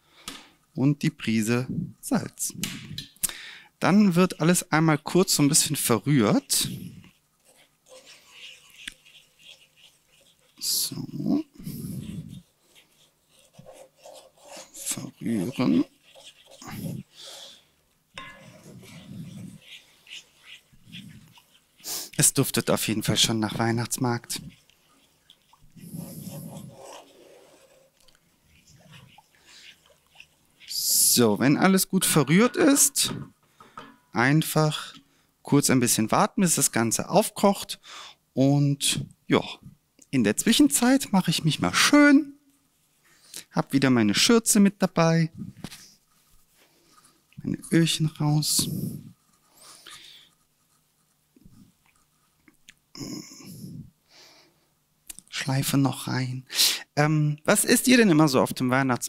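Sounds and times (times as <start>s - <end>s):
wooden spatula scraping pan: 5.3s - 34.1s.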